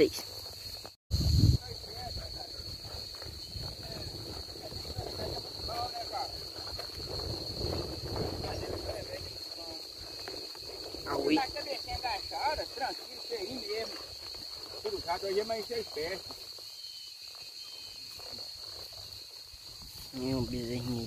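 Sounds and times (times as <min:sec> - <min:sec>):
high-pitched insect drone: 0:00.0 - 0:21.0
wind rumbling on microphone: 0:00.4 - 0:21.0.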